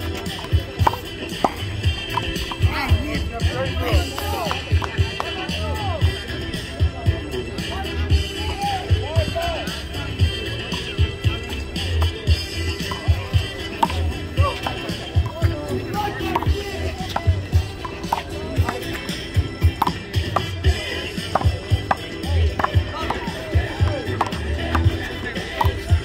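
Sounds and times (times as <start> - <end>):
music with bass beat: 0.0 - 26.0.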